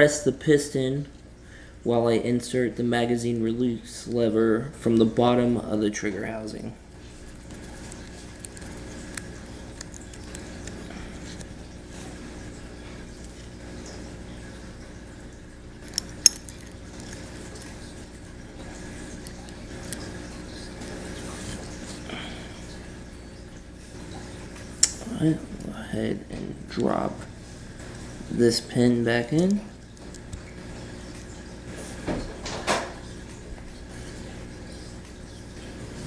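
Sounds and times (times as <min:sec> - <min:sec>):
low background hum: 0:00.0 - 0:36.0
metal parts clicking: 0:15.9 - 0:17.1.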